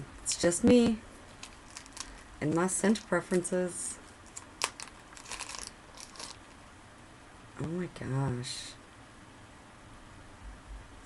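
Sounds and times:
plastic packet crinkling: 1.3s - 3.2s, 4.2s - 6.6s
plastic packet snapping: 1.4s - 2.3s, 4.3s - 6.6s.

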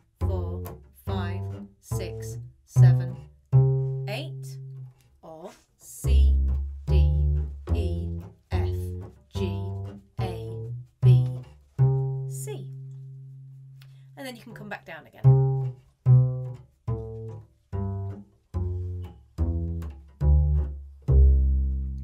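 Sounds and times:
double bass plucked scale: 0.0s - 5.0s, 5.8s - 22.0s
person counting: 4.0s - 11.6s, 12.2s - 12.9s.

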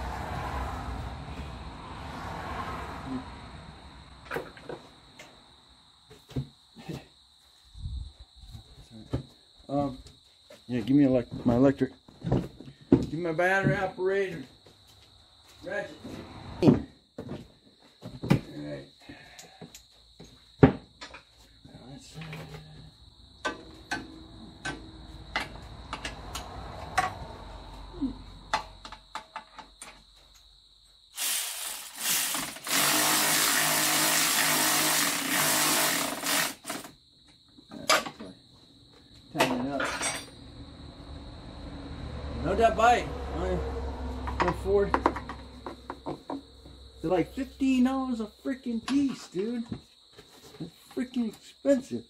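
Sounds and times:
cordless electric ratchet running: 31.2s - 36.9s
metal tools clinking: 39.8s - 40.4s.

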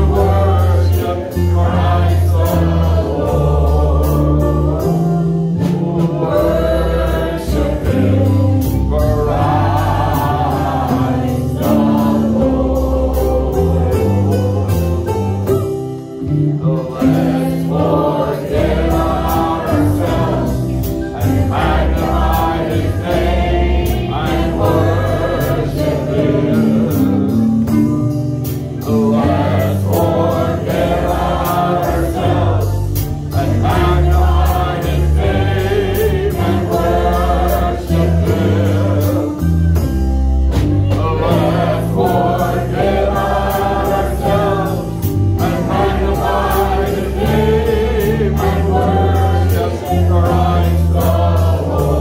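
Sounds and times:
group singing gospel song: 0.0s - 52.0s
live band with steady beat: 0.0s - 52.0s.

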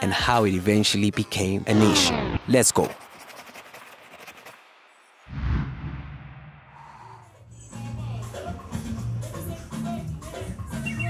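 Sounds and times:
fast scratchy crackling: 1.3s - 4.9s.

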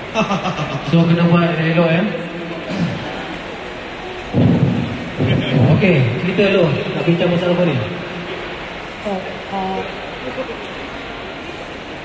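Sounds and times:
busy hall rumble: 0.0s - 12.0s.

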